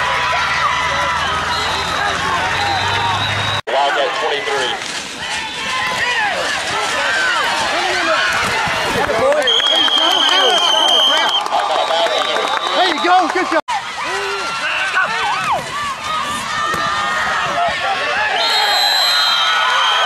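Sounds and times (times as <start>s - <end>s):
crowd shouting and cheering: 0.0s - 20.0s
referee's whistle blast: 1.5s - 2.0s, 9.4s - 13.3s, 18.3s - 20.0s.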